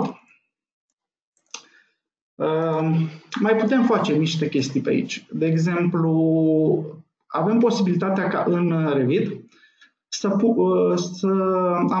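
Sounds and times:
man's voice: 0:02.4 - 0:09.5, 0:10.1 - 0:12.0.

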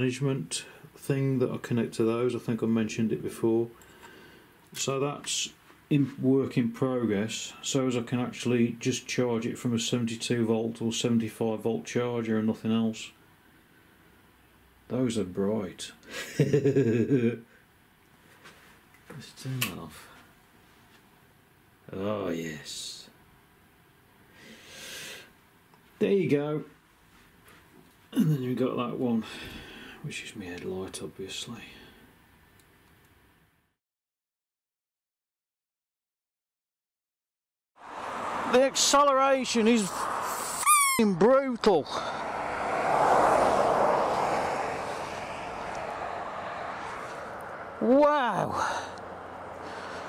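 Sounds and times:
wind rushing past microphone: 0:37.8 - 0:50.0
person breathing out: 0:41.8 - 0:42.4, 0:48.5 - 0:50.0.

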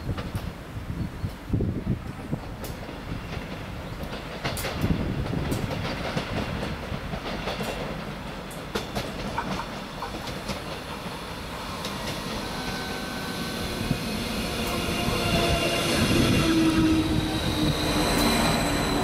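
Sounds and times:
train rumbling on rails: 0:00.0 - 0:19.0
train wheel clicks: 0:02.1 - 0:11.2.

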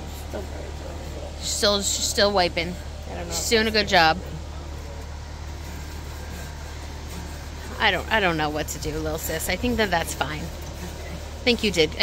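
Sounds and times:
low outdoor rumble: 0:00.0 - 0:12.0
woman's voice: 0:01.4 - 0:04.2, 0:07.8 - 0:10.5, 0:11.4 - 0:12.0.

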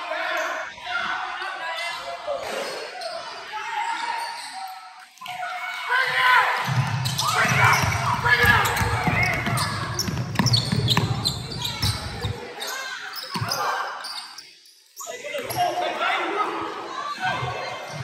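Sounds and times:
basketball bouncing on hardwood floor: 0:07.4 - 0:12.4.

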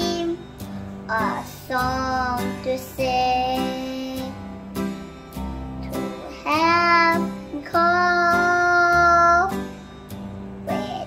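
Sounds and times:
instrumental backing music: 0:00.0 - 0:11.0.

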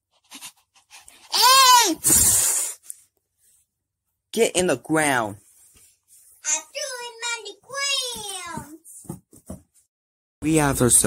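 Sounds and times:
child's bleat-like cry: 0:01.3 - 0:02.0.

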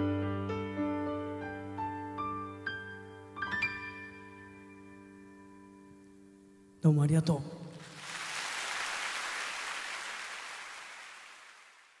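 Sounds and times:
audience applauding: 0:07.7 - 0:12.0.

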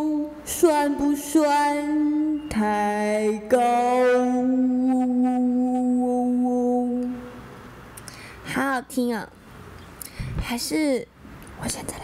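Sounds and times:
woman singing a cappella: 0:00.0 - 0:07.4.

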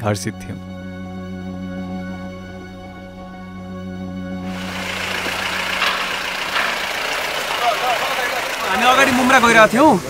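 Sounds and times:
vehicle engine idling: 0:04.4 - 0:10.0
faint voices: 0:04.7 - 0:10.0
man speaking: 0:07.6 - 0:10.0.

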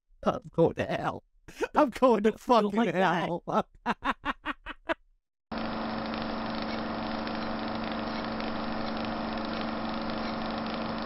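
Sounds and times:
steady machine hum: 0:05.5 - 0:11.0.

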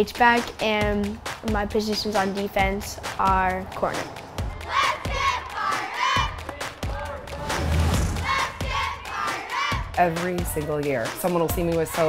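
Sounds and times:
children shouting: 0:04.5 - 0:07.6, 0:08.2 - 0:10.0.

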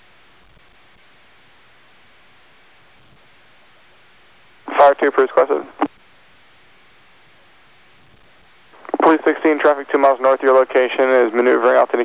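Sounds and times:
radio channel hiss: 0:02.5 - 0:12.0
radio voice transmission: 0:04.7 - 0:05.9, 0:08.8 - 0:12.0.

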